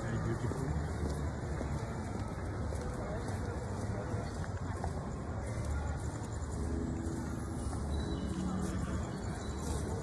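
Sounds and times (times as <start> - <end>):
low city rumble: 0.0 - 10.0.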